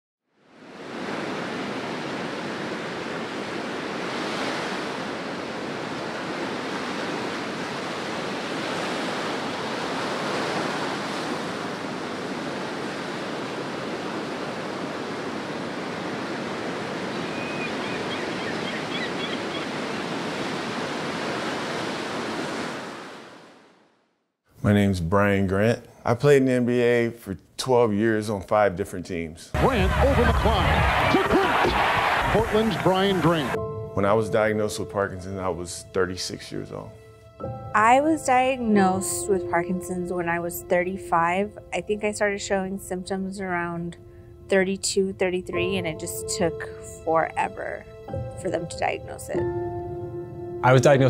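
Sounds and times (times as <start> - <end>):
ocean waves breaking: 0.4 - 23.9, 29.6 - 34.4, 36.5 - 51.0.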